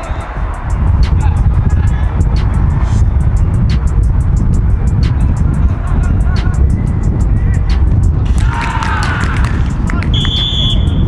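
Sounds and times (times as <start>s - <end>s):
steady low rumble: 0.0s - 11.0s
referee's whistle blast: 10.1s - 11.0s.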